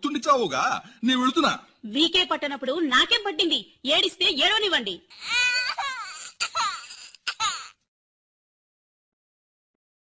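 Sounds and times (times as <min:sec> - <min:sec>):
baby crying: 0:05.0 - 0:07.9.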